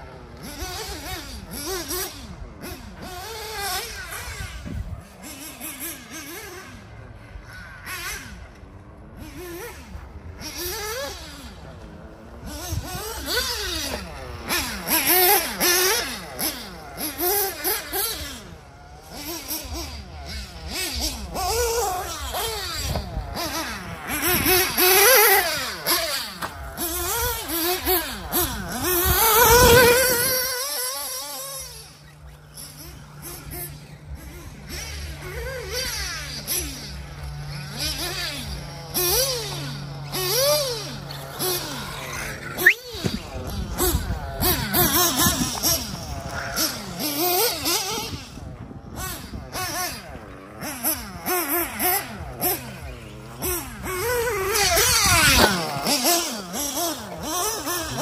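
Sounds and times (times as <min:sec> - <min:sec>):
model car nitro engine revving: 0:00.0 - 0:58.0.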